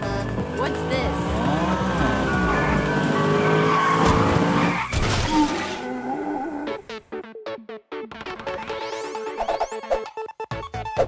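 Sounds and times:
cartoon soundtrack music: 0.0s - 11.0s.

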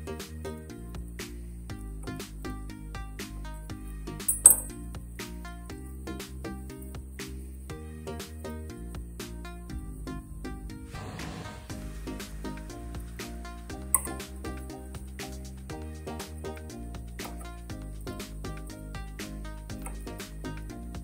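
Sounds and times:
background music with steady beat: 0.0s - 21.0s
sharp clink: 4.3s - 4.7s.

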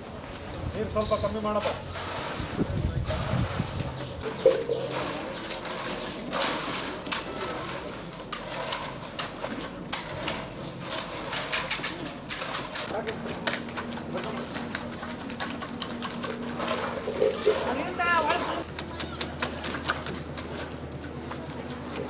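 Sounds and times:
hand tools scraping wet concrete: 1.3s - 22.0s
bird calling: 3.9s - 6.3s.

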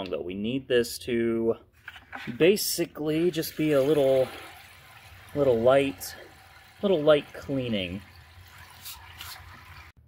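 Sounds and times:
faint liquid sounds: 2.1s - 10.0s.

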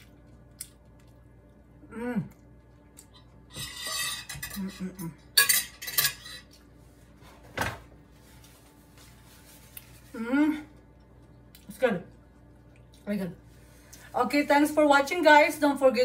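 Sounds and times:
cutlery and dishes clinking: 3.5s - 6.5s.

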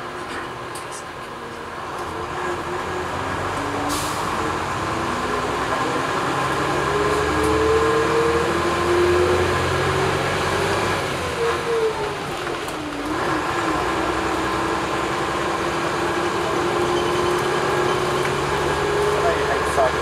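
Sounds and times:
bus engine running: 0.0s - 20.0s
rumble of moving bus: 0.0s - 20.0s.

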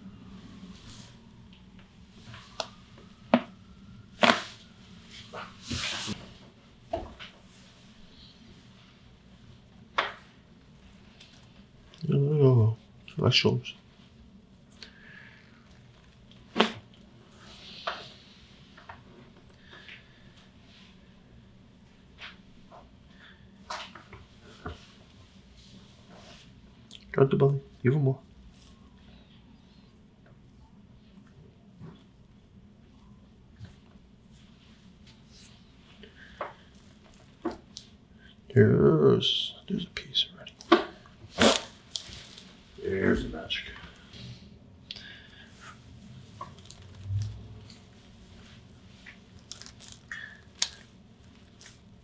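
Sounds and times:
spinal joint cracking: 49.0s - 52.0s.

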